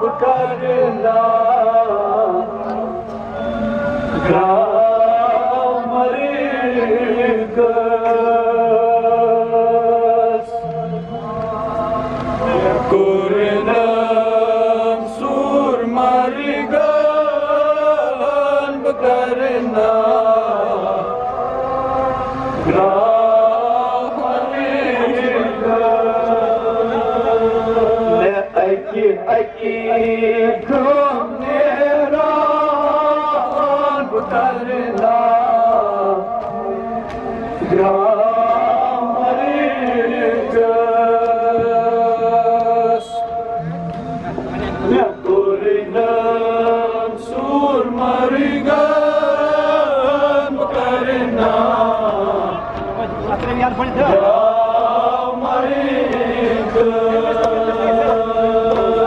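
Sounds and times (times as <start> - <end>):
men chanting a lament: 0.0 - 59.0.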